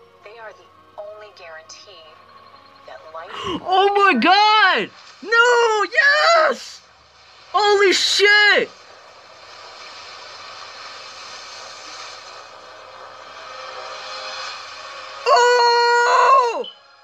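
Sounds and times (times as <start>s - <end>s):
faint movie soundtrack noise: 0.0s - 17.0s
man yelling excitedly: 3.5s - 6.8s, 7.6s - 8.7s.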